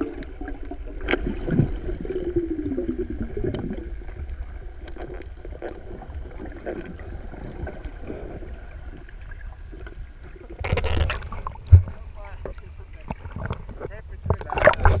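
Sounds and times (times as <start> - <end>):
muffled underwater rumble: 0.0 - 15.0
water sloshing: 0.0 - 15.0
water splashing: 0.0 - 15.0.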